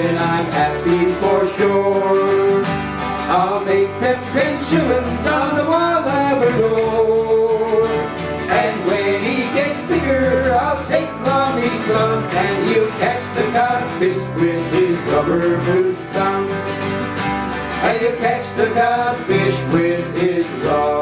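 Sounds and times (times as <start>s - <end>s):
strummed acoustic guitars: 0.0s - 21.0s.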